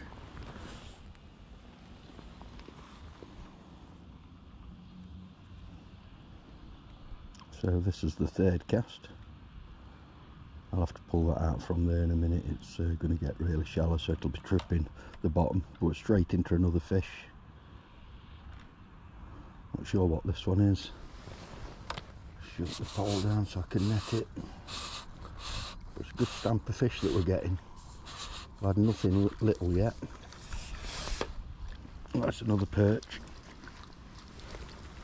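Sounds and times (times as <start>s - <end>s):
low outdoor rumble: 0.0s - 35.0s
light hiss: 20.9s - 31.9s.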